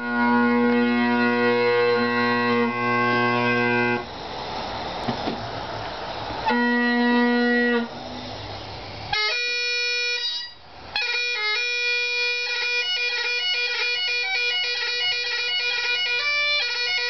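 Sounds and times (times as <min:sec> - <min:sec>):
bagpipe chanter high notes: 0:00.0 - 0:04.1, 0:06.4 - 0:08.0, 0:09.1 - 0:17.0
bagpipe drone chord: 0:00.0 - 0:04.2, 0:06.4 - 0:08.1, 0:09.1 - 0:17.0
rush of air: 0:04.0 - 0:06.5.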